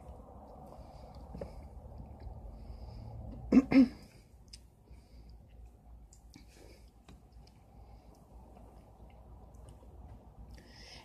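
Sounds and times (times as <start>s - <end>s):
steady low hum: 0.0s - 11.0s
person chewing food: 4.2s - 10.8s.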